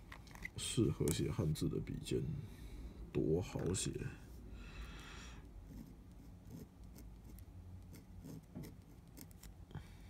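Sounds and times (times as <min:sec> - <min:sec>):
pen nib scratching paper: 0:05.6 - 0:09.6.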